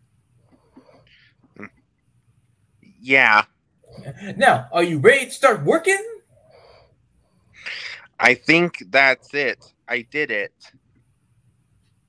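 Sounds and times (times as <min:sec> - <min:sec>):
person speaking: 0:03.9 - 0:06.2.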